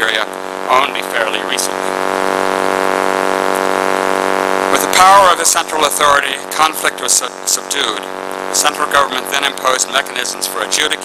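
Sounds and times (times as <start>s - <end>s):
loud steady buzzing hum: 0.0s - 11.0s.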